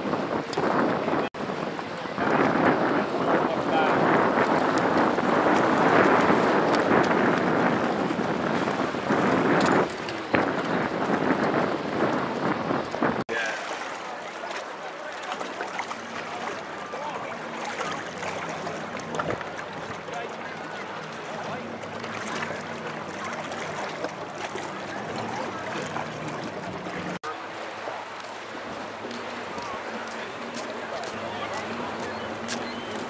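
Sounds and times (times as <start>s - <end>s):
water washing against rocks: 1.7s - 33.0s
people chattering: 13.3s - 33.0s.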